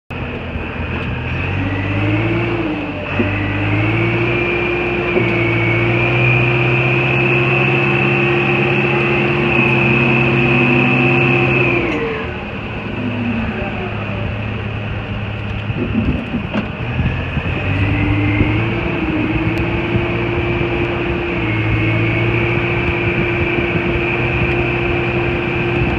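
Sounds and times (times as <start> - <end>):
diesel engine running: 0.1 - 25.9
high engine whine: 0.1 - 25.9.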